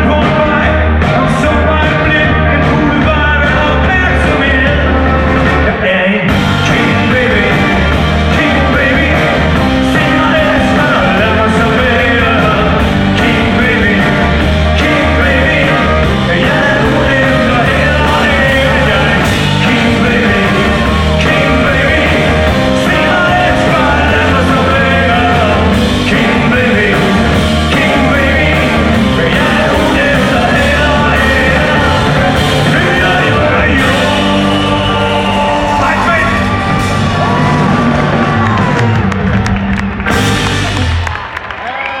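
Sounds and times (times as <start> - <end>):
man singing: 0.0 - 37.4
rock band playing live: 0.0 - 42.0.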